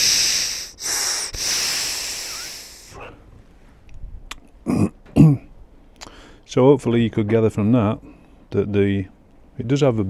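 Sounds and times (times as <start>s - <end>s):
air blowing through valve: 0.0s - 3.1s
short vocal sound: 0.0s - 3.2s.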